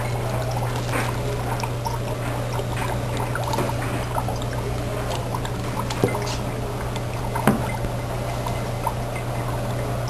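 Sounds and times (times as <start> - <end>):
dry ice bubbling in water: 0.0 - 10.0
low hum: 0.0 - 10.0.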